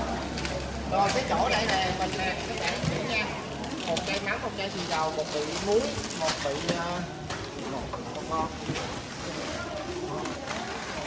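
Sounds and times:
people talking in background: 0:00.0 - 0:11.0
plastic bags rustling: 0:00.0 - 0:11.0.

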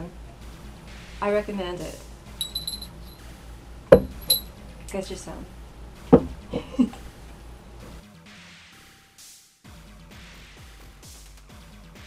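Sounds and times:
metallic jewelry clinks: 0:02.4 - 0:03.2, 0:03.9 - 0:04.5
loud thump: 0:03.9 - 0:04.3, 0:06.1 - 0:06.4.

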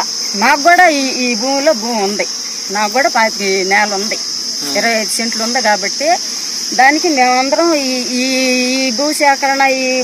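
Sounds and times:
crickets chirping: 0:00.0 - 0:10.0
woman talking: 0:00.0 - 0:10.0.

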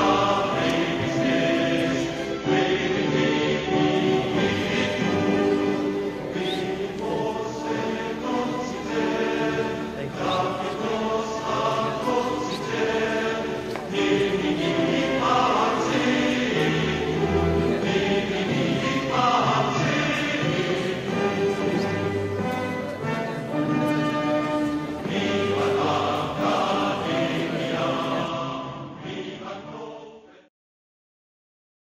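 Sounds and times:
choir singing held chords: 0:00.0 - 0:30.5.

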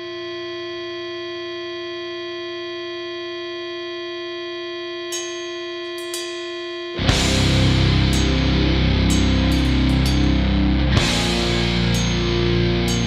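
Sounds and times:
bell-like electronic chord: 0:05.1 - 0:13.0.

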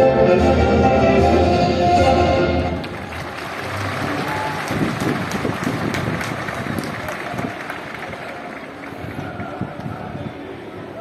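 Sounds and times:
crowd applauding: 0:02.7 - 0:09.8.

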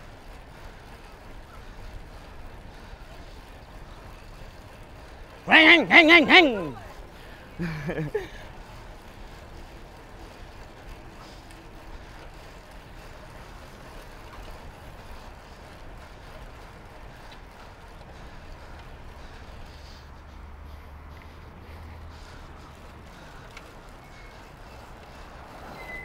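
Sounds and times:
bicycle tyre noise: 0:00.0 - 0:26.0.

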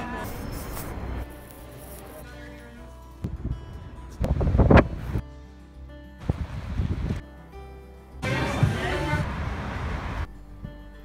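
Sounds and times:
background music: 0:00.0 - 0:11.0
wind buffeting microphone: 0:03.2 - 0:05.2, 0:06.2 - 0:07.2
rushing noise: 0:08.2 - 0:10.3.

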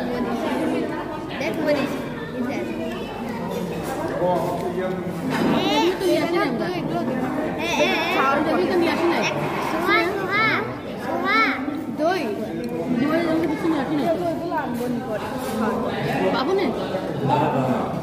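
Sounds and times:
children talking and calling out: 0:00.0 - 0:04.2, 0:05.4 - 0:14.9
background chatter: 0:00.0 - 0:18.0.

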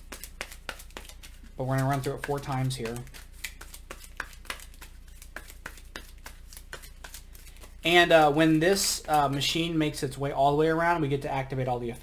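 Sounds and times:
cards clicking on tabletop: 0:00.1 - 0:07.7.

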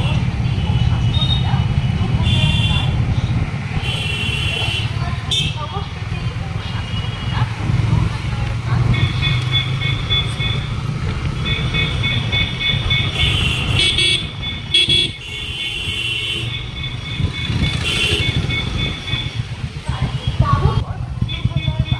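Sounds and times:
motorcycle engine rumble: 0:00.0 - 0:21.9
vehicle horns tooting: 0:02.1 - 0:03.0, 0:03.8 - 0:05.7, 0:08.8 - 0:10.7, 0:11.4 - 0:19.5, 0:21.2 - 0:21.9.

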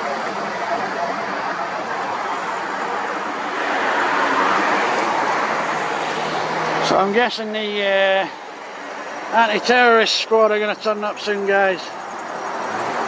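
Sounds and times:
car passing: 0:00.0 - 0:13.0.

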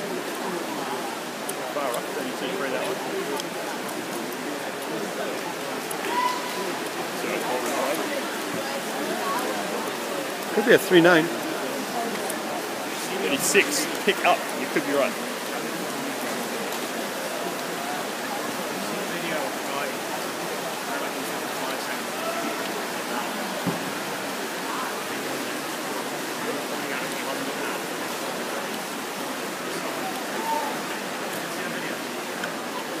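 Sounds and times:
crowd din in echoing hall: 0:00.0 - 0:33.0.

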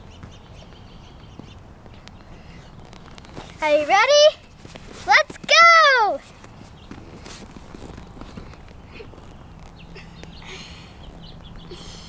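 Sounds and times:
quiet outdoor air: 0:00.0 - 0:12.0
taps and shuffles on foam mat: 0:00.1 - 0:10.4.

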